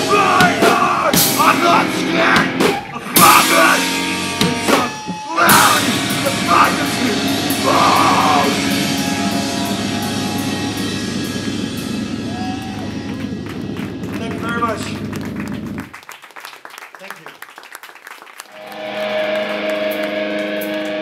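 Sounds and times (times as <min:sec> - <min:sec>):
hardcore punk band playing: 0:00.0 - 0:15.9, 0:18.6 - 0:21.0.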